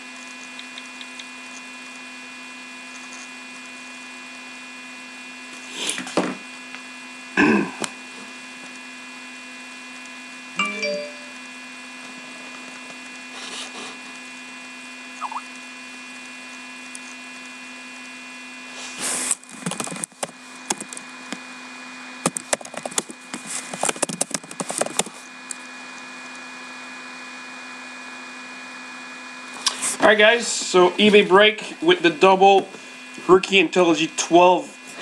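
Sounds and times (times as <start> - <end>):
low electrical hum: 0.0 - 35.0.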